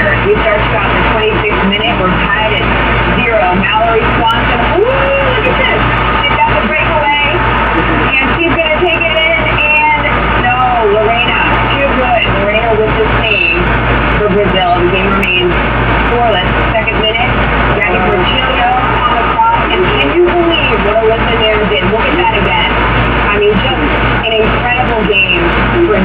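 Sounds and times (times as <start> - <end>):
indistinct voices: 0.0 - 26.0
low hum: 0.0 - 26.0.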